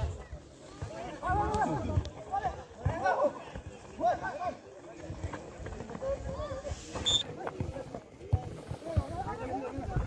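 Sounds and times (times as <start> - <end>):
people shouting and calling out: 0.0 - 5.2.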